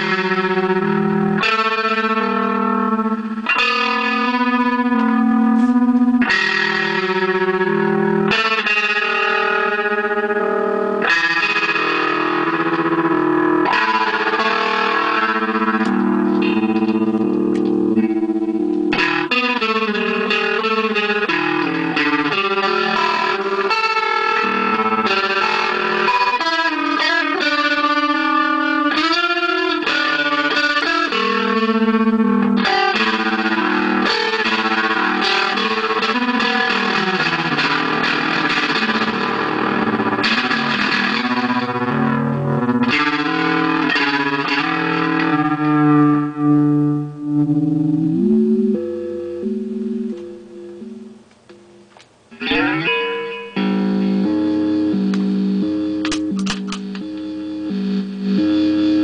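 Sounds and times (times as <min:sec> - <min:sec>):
overdriven electric guitar: 0:00.0 - 0:59.0.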